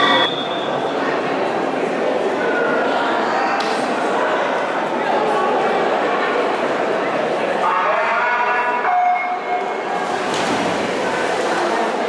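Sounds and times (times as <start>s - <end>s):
referee's whistle: 0.0s - 0.8s
echoing indoor pool din: 0.0s - 12.0s.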